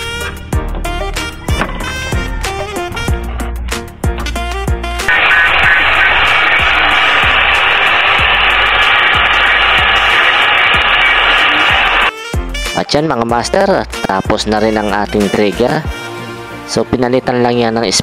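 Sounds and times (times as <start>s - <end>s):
background music: 11.1s - 18.0s.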